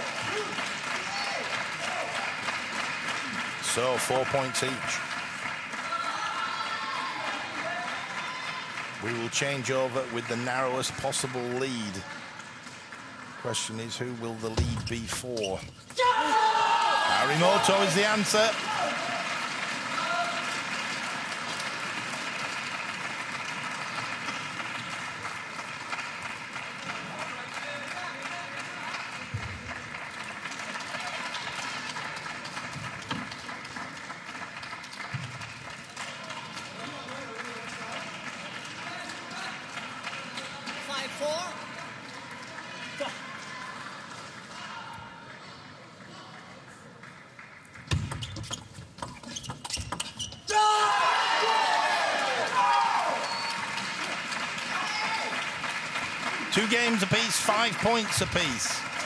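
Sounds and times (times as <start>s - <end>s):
crowd shouting and cheering: 0.0s - 2.6s, 3.2s - 12.4s, 13.2s - 21.6s, 50.4s - 59.0s
crowd chatter: 56.5s - 59.0s.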